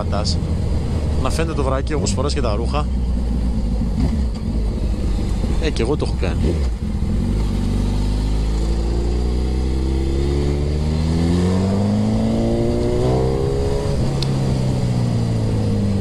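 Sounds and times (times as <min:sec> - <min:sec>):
motorcycle engine accelerating hard: 0:00.4 - 0:16.0.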